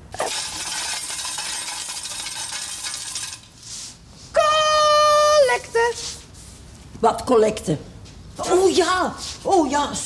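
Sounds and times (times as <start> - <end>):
coins rattling in a tin: 0.3 - 3.4.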